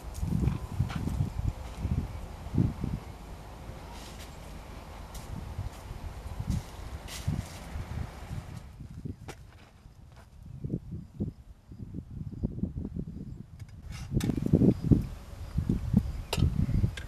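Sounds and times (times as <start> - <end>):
footsteps on dry grass: 0.0 - 2.0, 4.0 - 8.8.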